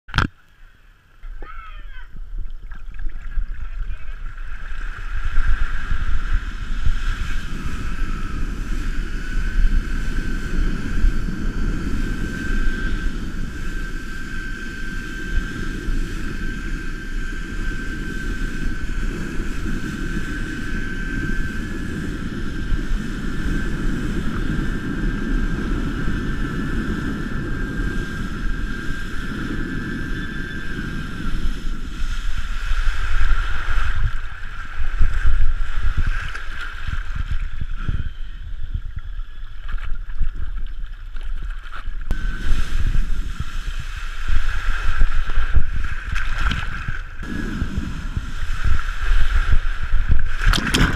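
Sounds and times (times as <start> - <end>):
thin high whine: 0.1 - 40.3, 41.6 - 50.9
wind buffeting microphone: 1.2 - 50.9.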